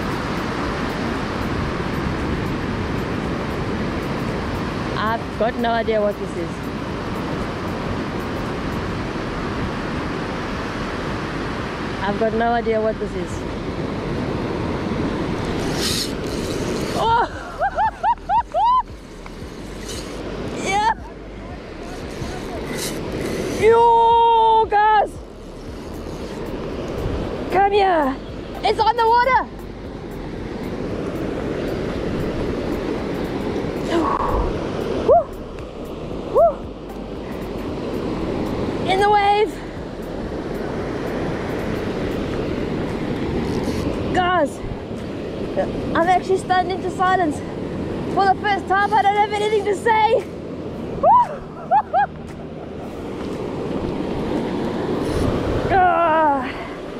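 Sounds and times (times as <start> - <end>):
waves breaking on a beach: 0.0 - 56.9.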